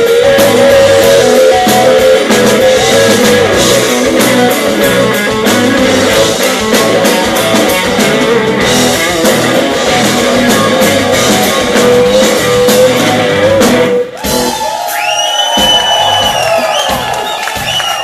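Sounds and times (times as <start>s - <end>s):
electric guitar bending notes: 0.0s - 14.5s
blues band playing: 0.0s - 18.0s
drums and bass: 0.0s - 18.0s.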